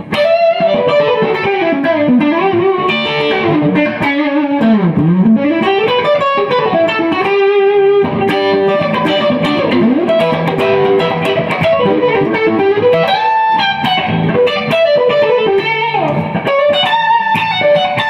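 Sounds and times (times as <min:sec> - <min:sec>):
overdriven electric guitar lead: 0:00.0 - 0:18.0.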